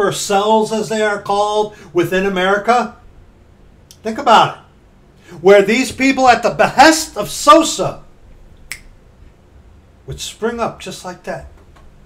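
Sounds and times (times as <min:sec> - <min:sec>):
finger snap: 0:08.6 - 0:09.0.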